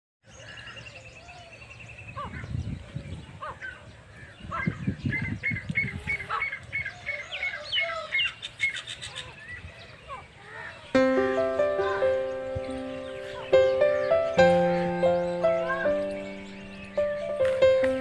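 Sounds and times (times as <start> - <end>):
birds chirping: 0.2 - 18.0
bird fast high trill: 11.0 - 17.4.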